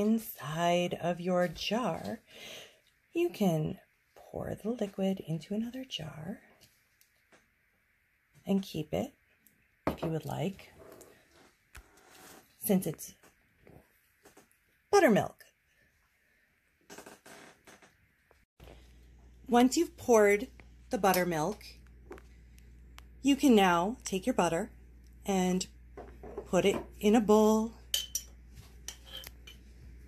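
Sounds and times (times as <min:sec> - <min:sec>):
metal spoon scraping glass jar: 0:27.9 - 0:29.6.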